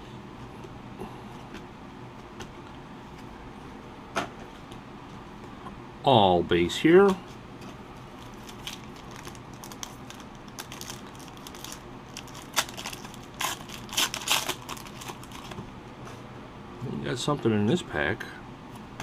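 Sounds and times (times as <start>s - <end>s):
foil wrapper tearing and crinkling: 8.1s - 15.6s.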